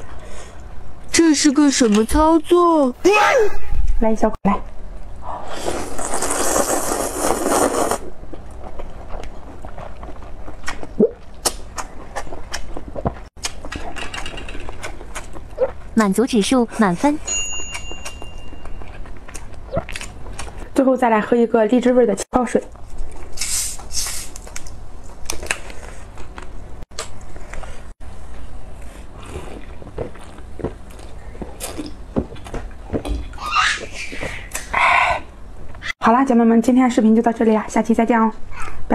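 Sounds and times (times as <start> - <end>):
person slurping noodles: 5.2 - 8.1.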